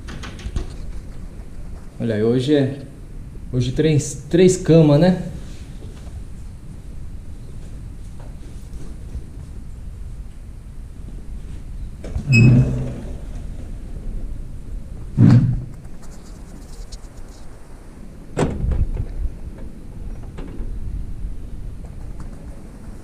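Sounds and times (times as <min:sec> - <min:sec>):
sliding window thudding: 0:12.0 - 0:13.8
window squeal: 0:12.2 - 0:13.1.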